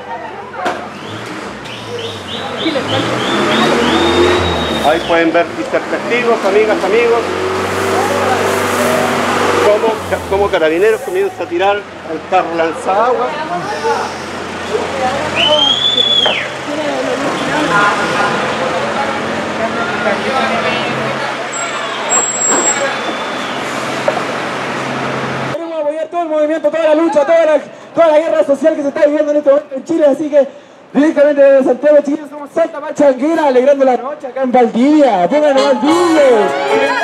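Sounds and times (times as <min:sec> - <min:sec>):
high whistle-like tone: 0:03.2 - 0:05.2, 0:15.4 - 0:16.5, 0:22.1 - 0:23.6
water spray hissing: 0:07.6 - 0:11.5.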